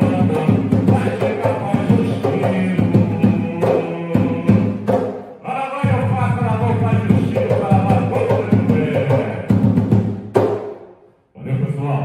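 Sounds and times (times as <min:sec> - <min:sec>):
man singing: 0:00.0 - 0:09.9.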